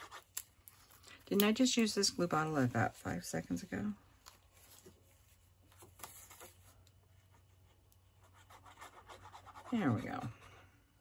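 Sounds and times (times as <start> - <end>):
card stock rustling: 4.2 - 6.9.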